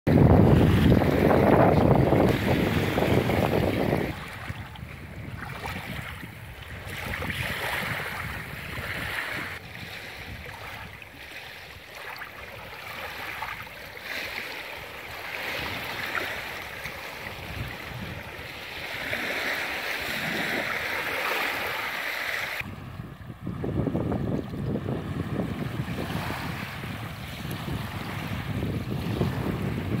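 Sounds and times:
wind buffeting microphone: 0.1s - 21.8s, 22.6s - 30.0s
small waves washing ashore: 0.1s - 30.0s.

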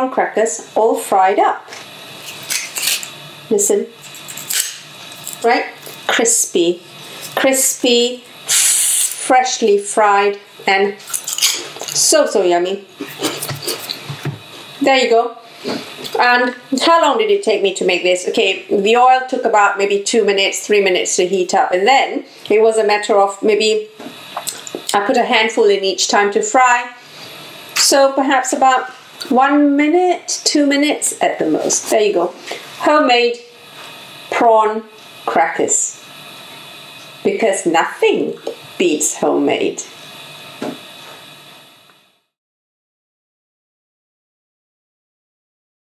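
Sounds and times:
faint hiss: 5.0s - 11.8s.

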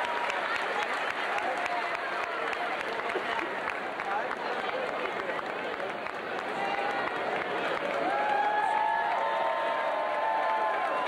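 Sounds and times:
crowd voices chattering: 0.0s - 11.0s
scattered clapping: 0.0s - 11.0s.

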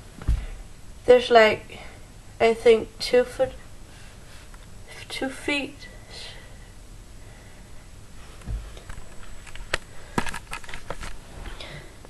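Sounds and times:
camera handling clicks and rustles: 8.9s - 11.2s.

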